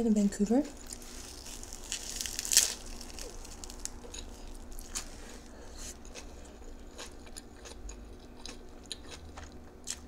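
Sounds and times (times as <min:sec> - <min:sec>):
seaweed crunching as it tears: 0:00.8 - 0:05.1
soft crackling of bite: 0:00.8 - 0:05.1.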